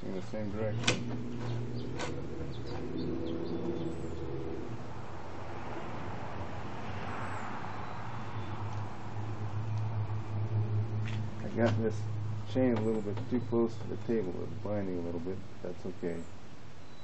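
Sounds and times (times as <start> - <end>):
motor hum: 0.0 - 5.0.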